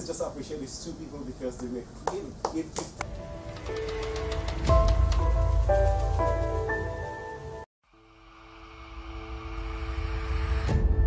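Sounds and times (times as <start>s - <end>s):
whooshing riser: 7.9s - 11.0s.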